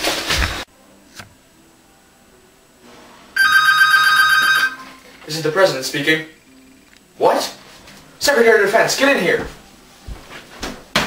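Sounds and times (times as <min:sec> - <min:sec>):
electronic telephone ringing: 0:03.4 - 0:05.0.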